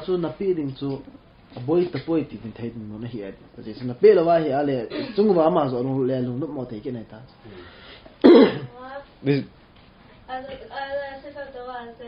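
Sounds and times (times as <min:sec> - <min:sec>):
man coughing loudly: 0:04.9 - 0:05.2, 0:08.2 - 0:08.7.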